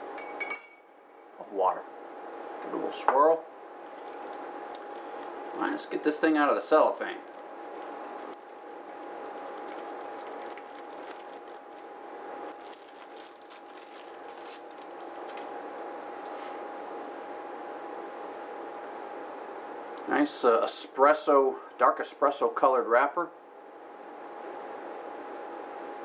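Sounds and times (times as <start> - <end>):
steady hum: 0.0 - 26.0
cellophane crinkling: 3.8 - 15.5.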